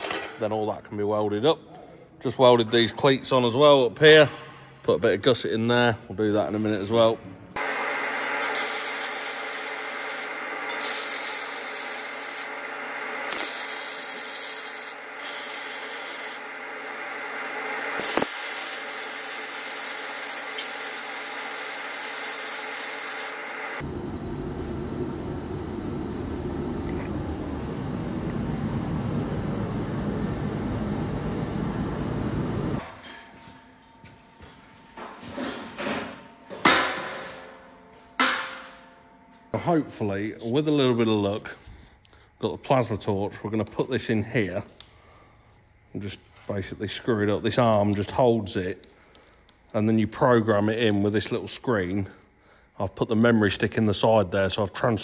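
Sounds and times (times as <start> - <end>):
welding arc crackling hiss: 7.6 - 23.8.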